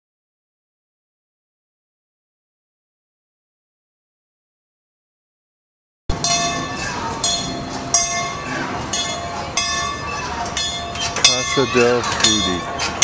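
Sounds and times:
high ringing tones: 6.1 - 13.0.

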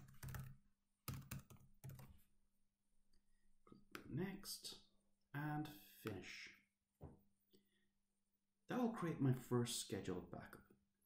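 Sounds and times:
faint typing on computer keyboard: 0.0 - 2.1.

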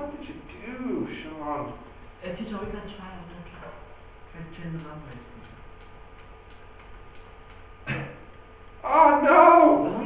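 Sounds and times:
low room hum: 0.0 - 10.0
computer keys clicking: 4.7 - 7.8.

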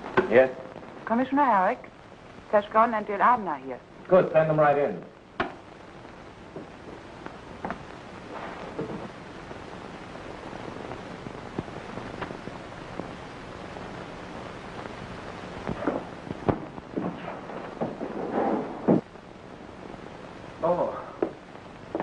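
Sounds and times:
old film soundtrack hiss: 0.0 - 22.0
clicks and pops: 5.3 - 5.7, 11.5 - 13.2, 15.6 - 17.2.

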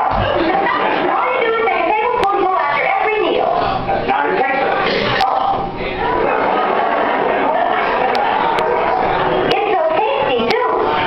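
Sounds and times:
room and crowd noise: 0.0 - 11.0.

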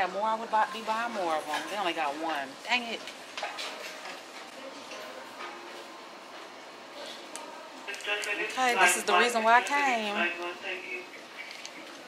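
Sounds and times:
faint distant voices: 3.6 - 12.0
background hiss: 6.6 - 12.0.

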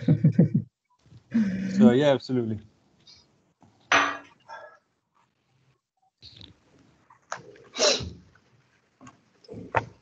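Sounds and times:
sneeze-like vocal burst: 7.8 - 8.1.

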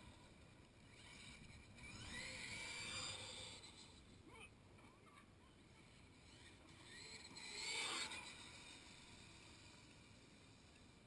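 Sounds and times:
distant vehicle high-pitched whine: 0.0 - 4.3, 6.0 - 11.0.

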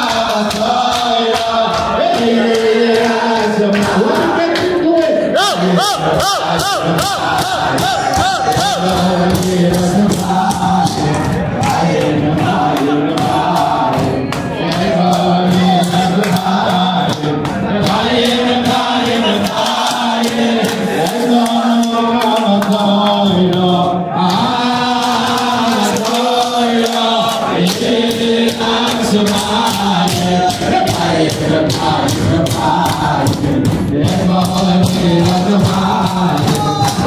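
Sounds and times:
sharp clapping: 0.0 - 4.8, 6.2 - 37.0
man singing into a microphone: 0.0 - 20.2, 21.0 - 37.0
crowd of men singing: 0.0 - 37.0.

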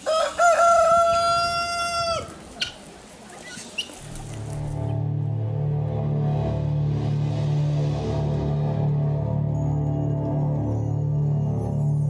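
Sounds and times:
rooster crowing: 0.0 - 2.4.

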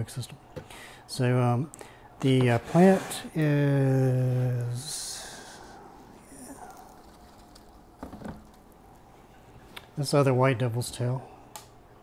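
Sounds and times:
plastic container handling knocks: 8.0 - 8.5.

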